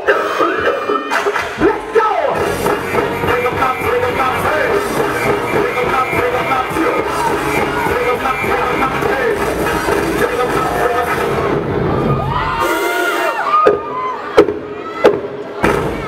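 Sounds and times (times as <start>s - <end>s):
dance music over loudspeakers: 0.0s - 16.0s
audience cheering: 10.3s - 16.0s.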